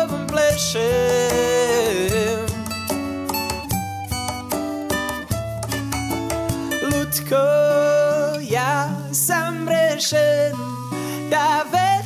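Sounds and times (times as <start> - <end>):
acoustic guitars strummed: 0.0 - 12.0
percussive strokes on the beat: 0.2 - 6.8.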